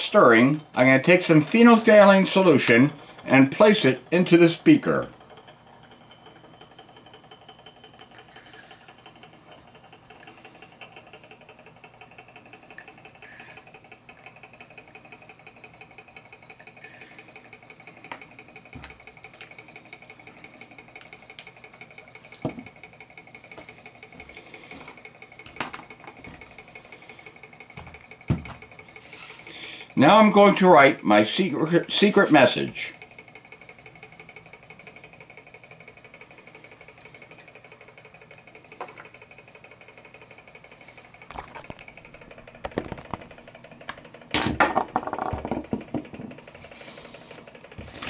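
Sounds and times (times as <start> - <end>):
magnetic stirrer whine: 0.0 - 29.4.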